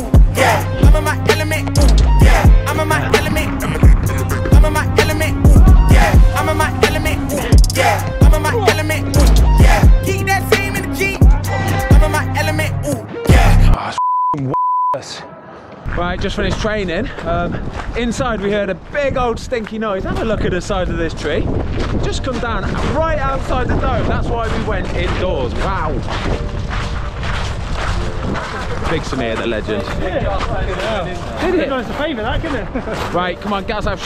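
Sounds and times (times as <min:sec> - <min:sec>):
rap music with heavy bass: 0:00.0 - 0:14.0
wind buffeting microphone: 0:02.2 - 0:07.5, 0:15.9 - 0:34.0
censor bleeps: 0:13.9 - 0:15.0.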